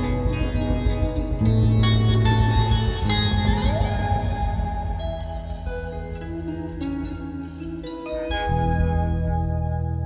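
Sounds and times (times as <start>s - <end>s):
rock band playing live: 0.0s - 9.6s
electric guitar gliding note: 0.0s - 10.0s.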